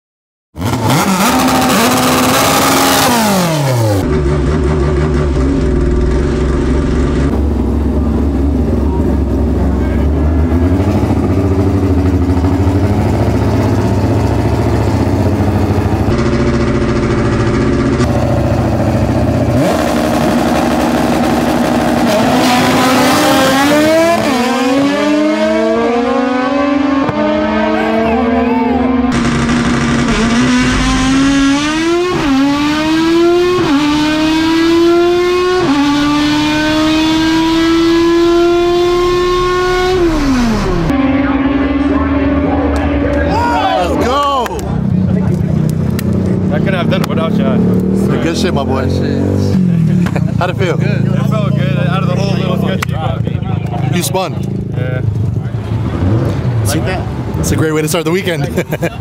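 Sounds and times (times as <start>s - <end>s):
race car engine revving: 0.6s - 59.0s.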